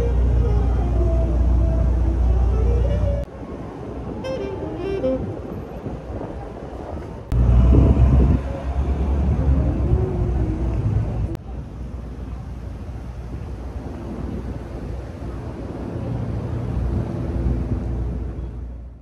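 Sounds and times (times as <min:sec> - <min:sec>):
low traffic rumble: 0:00.0 - 0:19.0.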